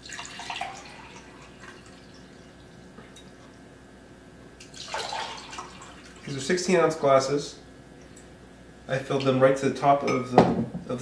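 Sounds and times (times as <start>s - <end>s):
water pouring into a glass: 0.0s - 2.7s, 4.7s - 6.3s.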